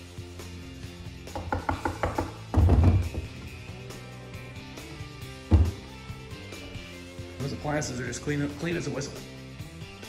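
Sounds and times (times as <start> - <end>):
quiet background music: 0.0 - 10.0
knocks on wooden cabinet door: 1.3 - 3.4, 5.5 - 5.8.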